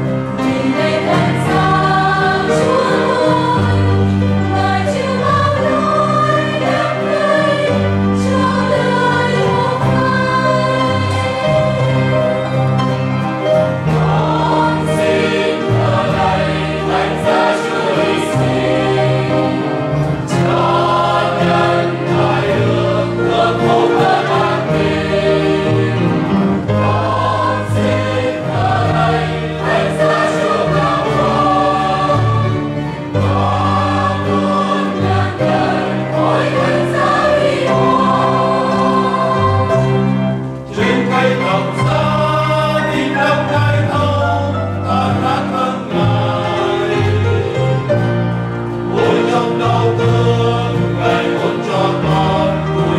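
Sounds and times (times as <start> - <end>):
choir singing a hymn: 0.0 - 52.9
piano: 0.0 - 52.9.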